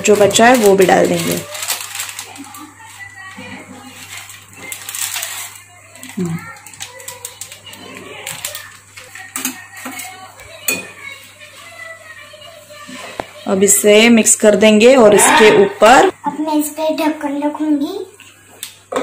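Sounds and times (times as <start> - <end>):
plastic packet crinkling: 0.0 - 10.6.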